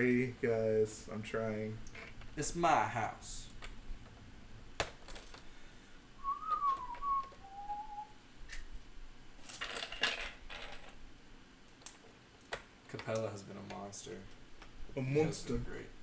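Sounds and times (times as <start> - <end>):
person whistling: 6.2 - 8.2.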